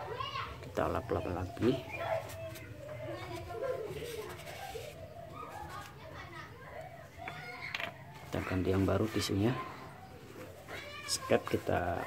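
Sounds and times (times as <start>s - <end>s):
children talking and playing: 0.0s - 12.0s.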